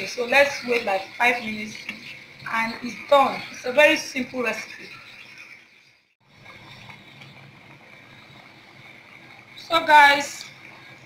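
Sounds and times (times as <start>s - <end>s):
soup boiling with bubbling hiss: 0.0s - 11.0s.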